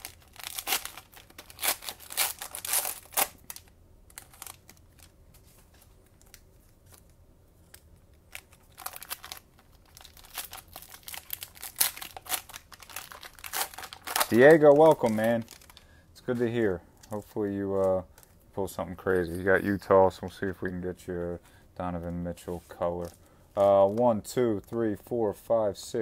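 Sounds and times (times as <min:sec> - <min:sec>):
plastic wrappers crinkling and tearing: 0:00.0 - 0:17.3, 0:22.0 - 0:25.0.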